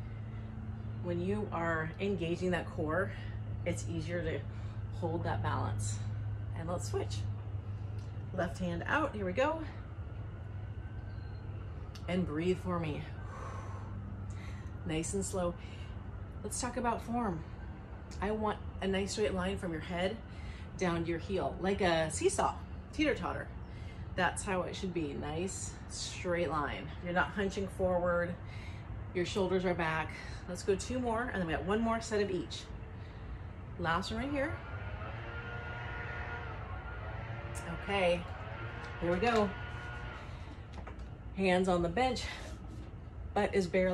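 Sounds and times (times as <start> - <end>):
low background rumble: 0.0 - 43.9
steady low hum: 0.0 - 43.9
woman breathing: 13.1 - 14.8, 20.3 - 20.8, 28.4 - 29.1.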